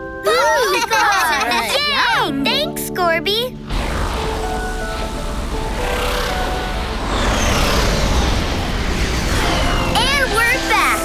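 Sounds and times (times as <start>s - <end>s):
rushing rumble: 3.6s - 11.0s
falling whistles: 7.0s - 10.9s.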